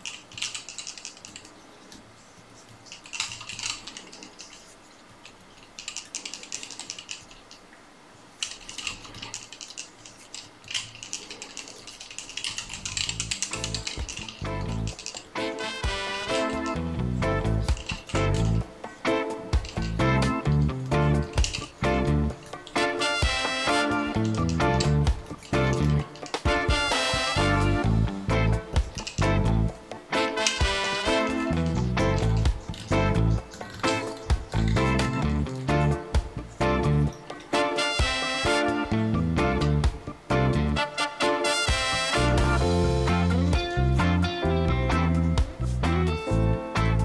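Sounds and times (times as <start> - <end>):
dry crackling rustle: 0.0 - 39.0
music with bass and beat: 15.8 - 18.6, 19.6 - 22.4, 23.2 - 29.7, 30.6 - 37.1, 38.0 - 40.8, 41.7 - 47.0.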